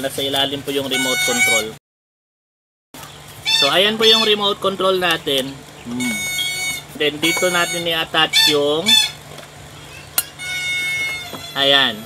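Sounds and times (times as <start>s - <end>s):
high-pitched tone: 0.9s - 1.8s, 3.5s - 4.6s, 5.9s - 9.1s.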